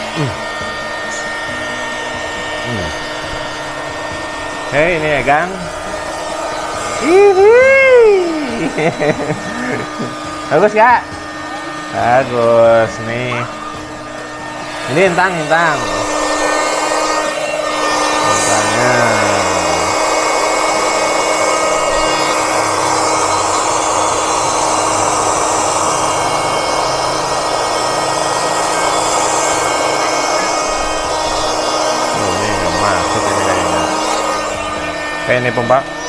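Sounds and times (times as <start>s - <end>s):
electric air pump humming: 0.0s - 36.0s.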